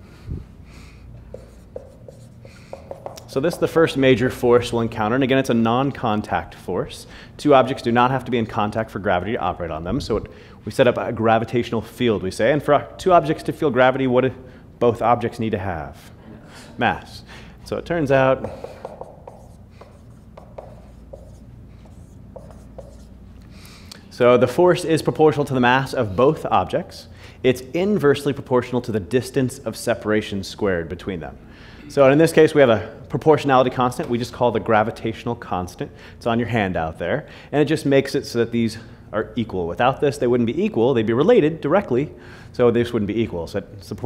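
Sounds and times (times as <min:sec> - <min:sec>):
low room hum: 0:00.0 - 0:44.0
marker squeaking on whiteboard: 0:01.3 - 0:03.8, 0:18.4 - 0:23.2.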